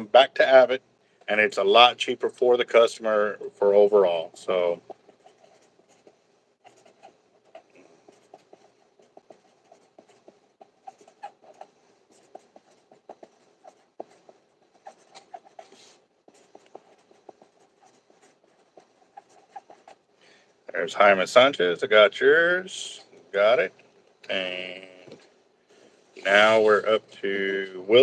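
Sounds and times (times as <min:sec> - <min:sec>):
hands scratching near microphone: 0:04.6 - 0:20.0.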